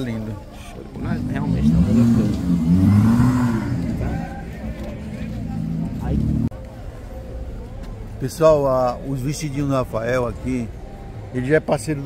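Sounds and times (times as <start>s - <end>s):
indistinct voices: 0.0s - 7.6s.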